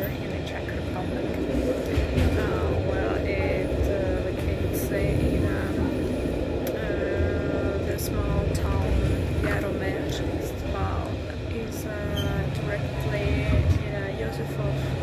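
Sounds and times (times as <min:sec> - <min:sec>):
train rumbling: 0:00.0 - 0:15.0
person talking: 0:06.7 - 0:15.0.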